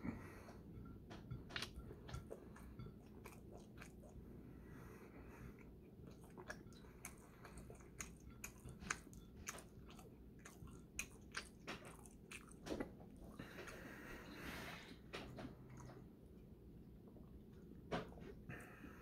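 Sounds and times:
person chewing food: 0.0s - 19.0s.

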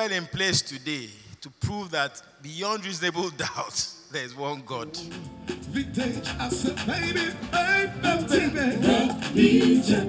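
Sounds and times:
live band music: 4.9s - 10.0s
person singing: 4.9s - 10.0s.

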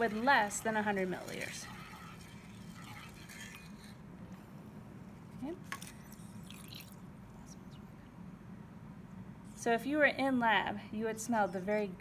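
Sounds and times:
water trickling into glass beaker: 0.0s - 4.0s, 6.0s - 7.0s
low room hum: 0.0s - 12.0s.

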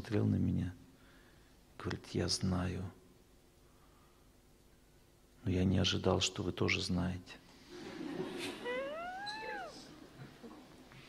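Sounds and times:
high-pitched rising falling call: 8.6s - 9.8s.

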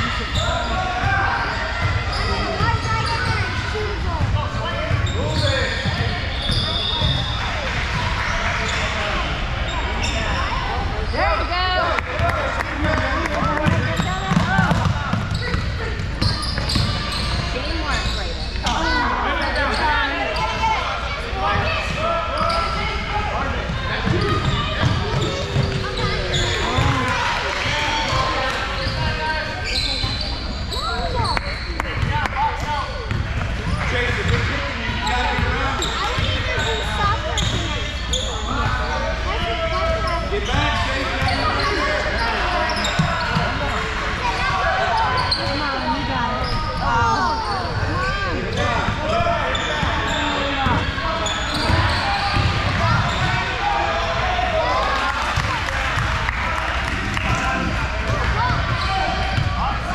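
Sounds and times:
sneakers squeaking: 0.0s - 11.6s, 12.2s - 56.2s, 57.2s - 59.9s
indistinct voices in hall: 0.0s - 59.9s
basketball bouncing on court: 12.2s - 17.6s, 48.8s - 53.4s.

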